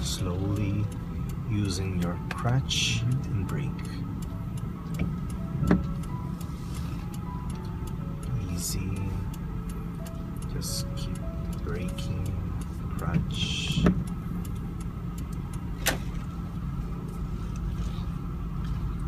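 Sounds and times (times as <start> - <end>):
car engine and road noise: 0.0 - 19.0
soft background music: 0.0 - 19.0.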